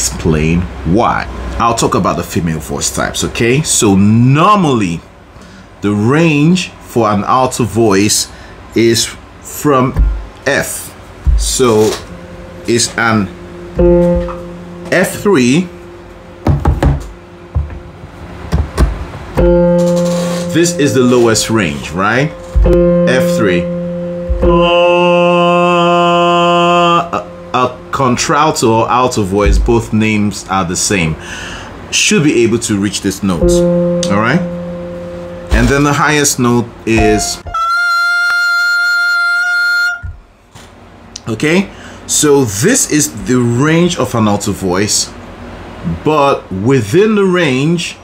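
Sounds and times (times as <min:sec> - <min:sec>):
electronic keyboard low note: 0:09.8 - 0:10.4, 0:11.2 - 0:30.0, 0:33.4 - 0:37.7
short knocks: 0:10.0 - 0:10.4, 0:11.3 - 0:12.1, 0:16.4 - 0:17.9, 0:18.5 - 0:20.0, 0:22.5 - 0:23.0.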